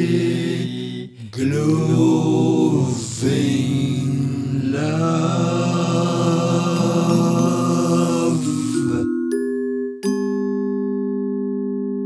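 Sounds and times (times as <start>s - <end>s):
chanted vocal drone: 0.0s - 9.1s.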